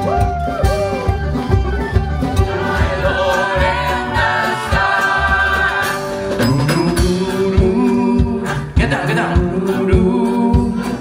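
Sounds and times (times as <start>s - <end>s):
low drum beat: 0.0s - 10.9s
group singing in harmony: 2.3s - 11.0s.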